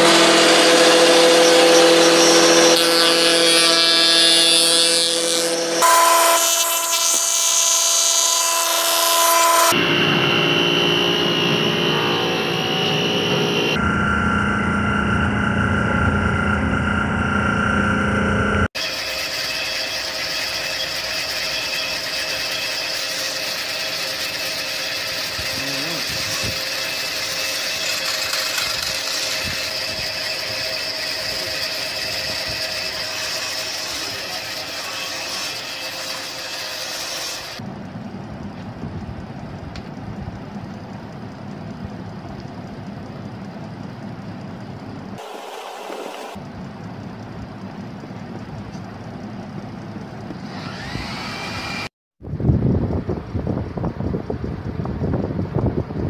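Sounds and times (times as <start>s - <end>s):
woodworking machinery humming: 0.0s - 51.9s.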